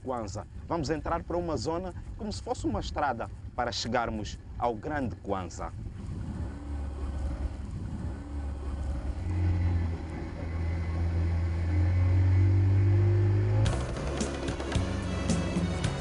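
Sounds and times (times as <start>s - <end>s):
motorboat engine running: 0.0s - 16.0s
music: 13.6s - 16.0s.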